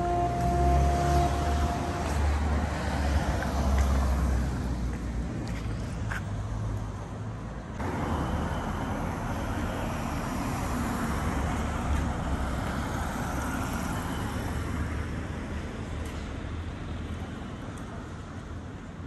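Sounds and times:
cars driving past: 0:00.0 - 0:15.5.

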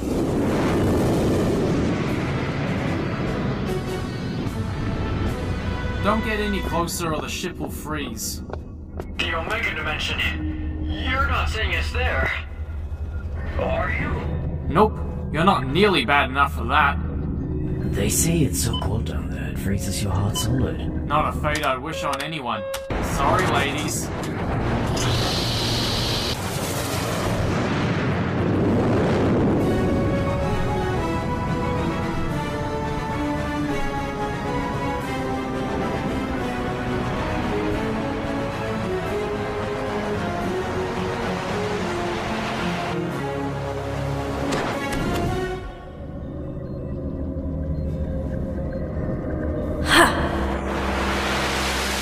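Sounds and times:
dark ominous soundtrack: 0:00.0 - 0:52.0.

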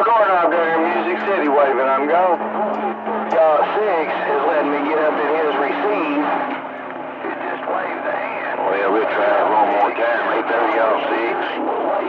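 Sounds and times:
steady low hum: 0:00.0 - 0:12.0
unintelligible radio voices: 0:00.0 - 0:12.0.

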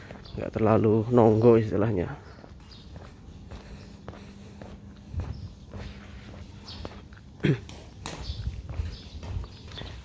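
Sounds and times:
footsteps on brick pavers: 0:00.0 - 0:10.0.

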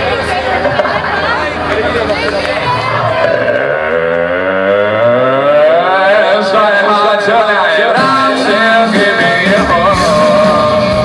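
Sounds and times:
amplified tone sliding upward: 0:03.1 - 0:06.6
rock band playing live: 0:07.9 - 0:11.0.

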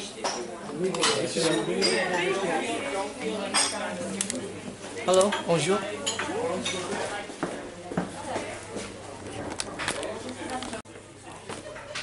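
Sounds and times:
dishes and cutlery clinking: 0:00.0 - 0:02.6, 0:03.4 - 0:03.9, 0:05.2 - 0:07.2.

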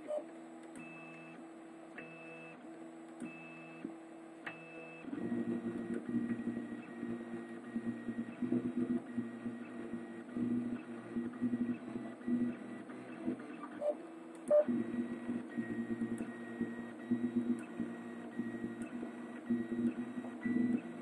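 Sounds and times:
printer stepper motors whining: 0:04.5 - 0:21.0.

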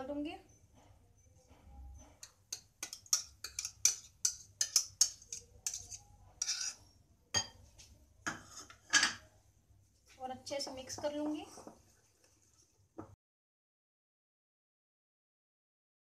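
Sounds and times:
whisk scraping against bowls: 0:02.2 - 0:07.0, 0:08.3 - 0:08.9
glass bowl clink: 0:06.4 - 0:07.7, 0:08.3 - 0:09.2.

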